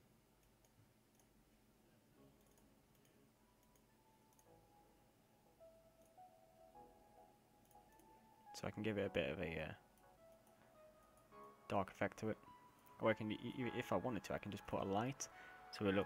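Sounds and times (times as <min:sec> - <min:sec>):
faint background music: 0:00.0 - 0:16.0
computer mouse clicks: 0:00.4 - 0:01.4, 0:02.4 - 0:04.5, 0:07.6 - 0:08.2.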